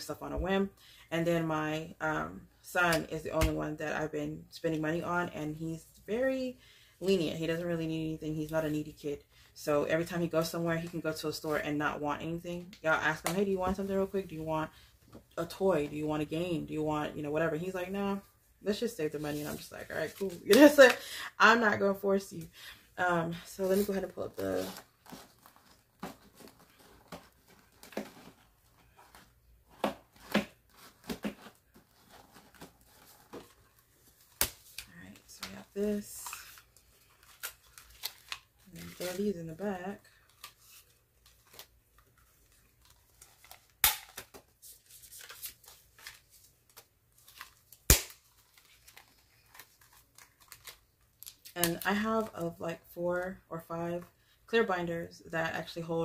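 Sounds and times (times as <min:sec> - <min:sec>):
envelope crinkling: 0:36.0 - 0:51.6.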